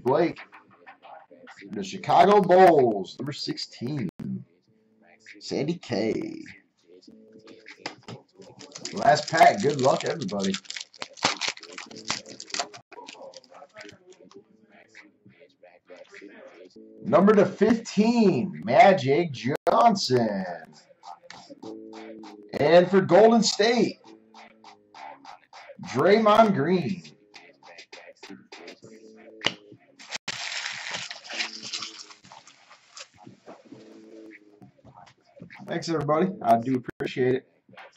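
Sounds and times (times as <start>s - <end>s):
rustling handling noise: 7.8s - 13.9s, 30.0s - 34.0s
foil wrapper crinkling: 8.4s - 13.9s, 30.0s - 33.3s.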